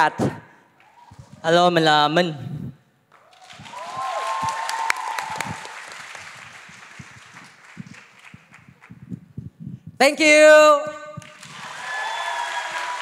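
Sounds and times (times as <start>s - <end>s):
audience applauding: 3.2s - 9.0s, 11.2s - 13.0s
crowd cheering whoop: 3.3s - 5.9s, 11.4s - 13.0s.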